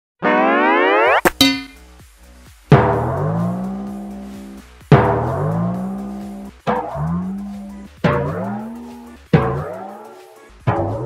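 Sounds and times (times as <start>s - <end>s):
rising cartoon tone: 0.2s - 1.4s
sharp ringing strikes: 1.3s - 1.8s.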